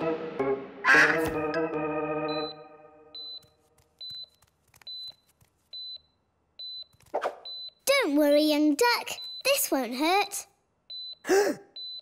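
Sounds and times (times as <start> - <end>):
background music: 0.0 - 3.3
heart-rate monitor beeps: 2.3 - 7.8, 9.2 - 9.6, 10.9 - 12.0.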